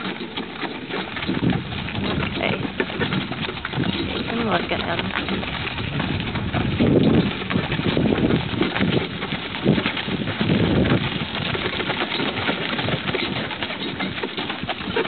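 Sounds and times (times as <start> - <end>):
horse hooves clopping on pavement: 0.0 - 15.0
low rumbling: 1.3 - 11.7.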